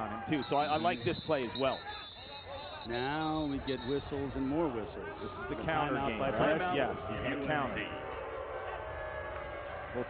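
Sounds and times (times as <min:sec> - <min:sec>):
stadium background noise: 0:00.0 - 0:10.0.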